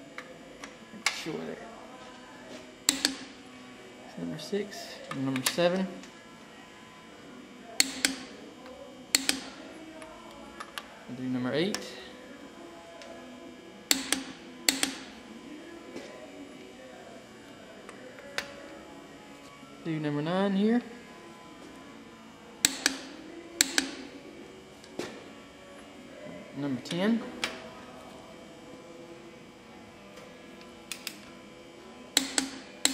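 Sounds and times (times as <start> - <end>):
torque wrench clicks: 2.9 - 3.2, 7.8 - 8.3, 9.1 - 9.5, 13.9 - 15.1, 22.6 - 24.0, 32.2 - 32.9.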